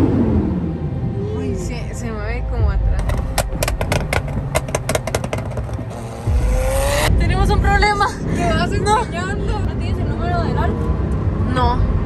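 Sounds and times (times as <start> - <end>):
exhaust cracks and pops: 3.0 - 6.4
sports car engine revving: 3.0 - 7.5.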